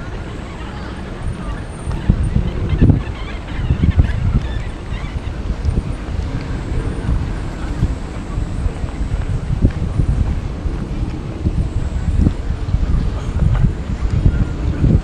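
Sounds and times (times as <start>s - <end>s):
distant traffic: 0.0s - 15.0s
wind buffeting microphone: 0.0s - 15.0s.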